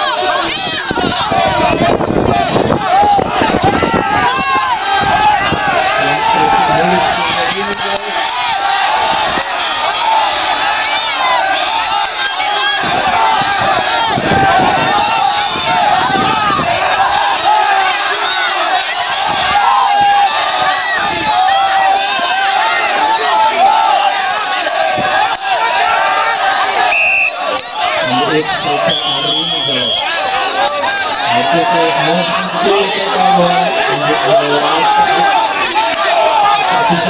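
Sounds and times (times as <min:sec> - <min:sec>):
crowd shouting and cheering: 0:00.0 - 0:37.0.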